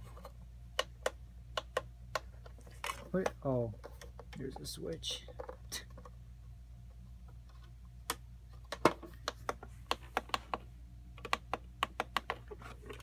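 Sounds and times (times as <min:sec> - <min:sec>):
low steady hum: 0:00.0 - 0:13.0
plastic toy clicks and taps: 0:00.8 - 0:02.3, 0:11.2 - 0:12.4.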